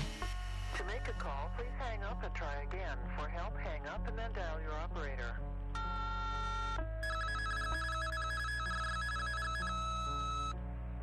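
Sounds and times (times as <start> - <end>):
soft background music: 0.0 - 11.0
steady beep: 5.8 - 10.5
warbling telephone tone: 5.8 - 10.6.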